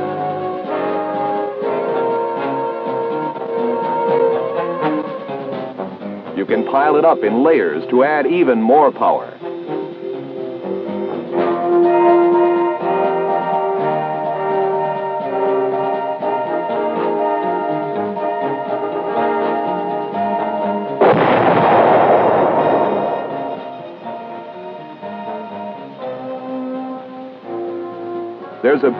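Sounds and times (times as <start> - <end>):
orchestral music with held chords: 0.0 - 28.9
explosion blast: 21.0 - 24.0.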